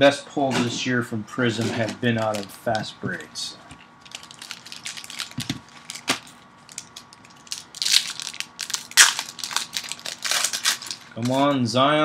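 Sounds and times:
card pack wrappers crinkling: 1.6s - 3.3s, 4.0s - 11.4s.

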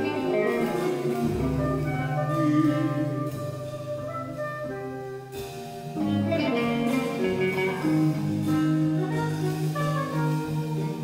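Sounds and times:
electric guitar sustained notes: 0.0s - 11.0s.

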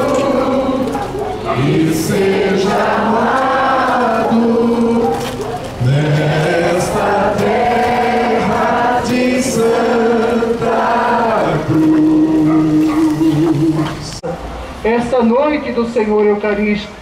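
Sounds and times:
slow hymn singing: 0.0s - 14.2s.

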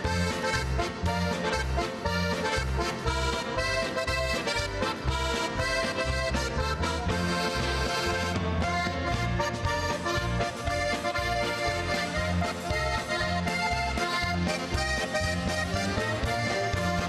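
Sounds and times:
bass steady beat: 0.0s - 17.0s
button accordion playing polka: 0.0s - 17.0s.

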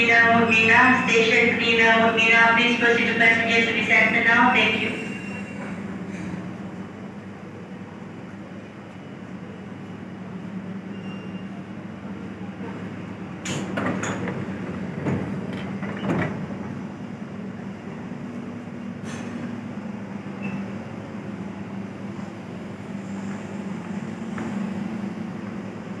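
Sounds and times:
metro train humming: 0.0s - 26.0s
train doors sliding open: 4.6s - 26.0s.

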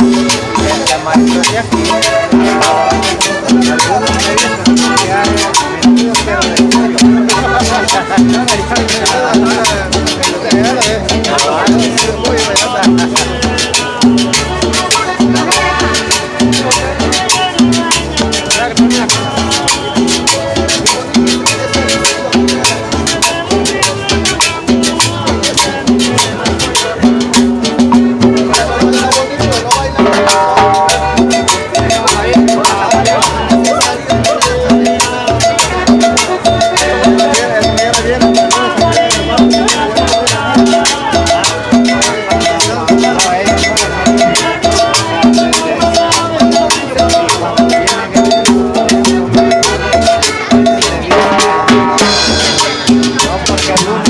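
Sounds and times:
bass: 0.0s - 54.0s
button accordion melody: 0.0s - 54.0s
percussion beat: 0.0s - 54.0s.

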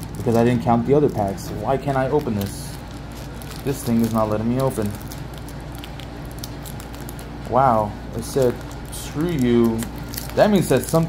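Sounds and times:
steady low hum: 0.0s - 11.0s
wrapper crinkling: 0.0s - 11.0s.

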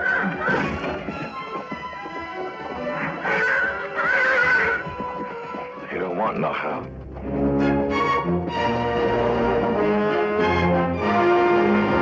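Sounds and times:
horse whinnying: 0.0s - 5.4s
film score music: 0.0s - 12.0s.

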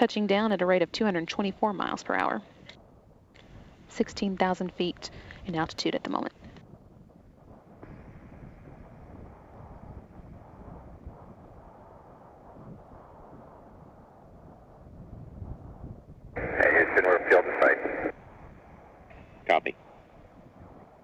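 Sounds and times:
radio clicks: 16.4s - 18.1s
radio voice traffic: 16.4s - 18.1s, 19.5s - 19.7s
steady rushing hiss: 16.4s - 18.1s.

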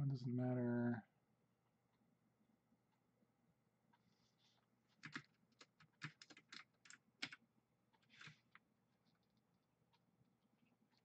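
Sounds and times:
computer keyboard key clicks: 5.0s - 7.4s.

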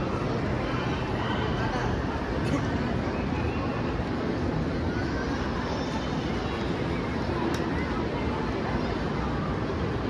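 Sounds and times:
indistinct crowd chatter: 0.0s - 10.0s.

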